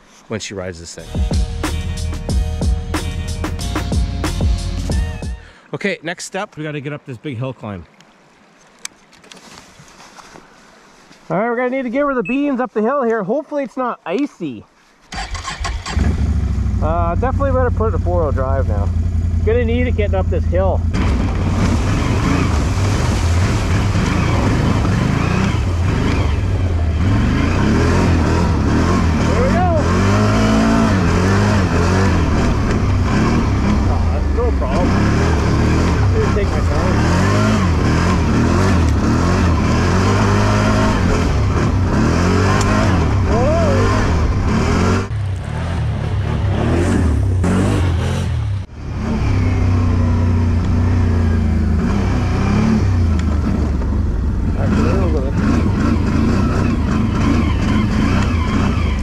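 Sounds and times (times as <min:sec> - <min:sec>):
atv engine revving under load: 0:15.1 - 0:59.0.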